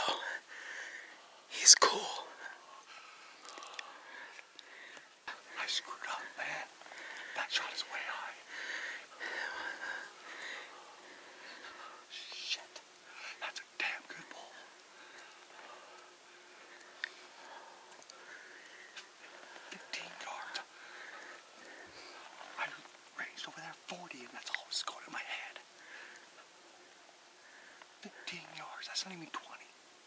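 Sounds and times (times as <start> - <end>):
man whispering: 0.0 - 29.9.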